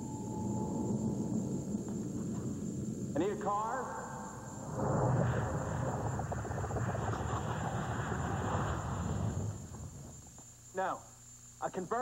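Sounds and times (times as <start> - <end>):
faint high held tone: 0.0 - 2.0
low rushing ambient hum: 0.0 - 10.8.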